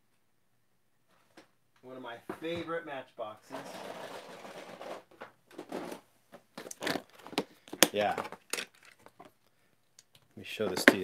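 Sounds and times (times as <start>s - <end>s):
packaging crinkling and rustling: 6.6s - 9.4s.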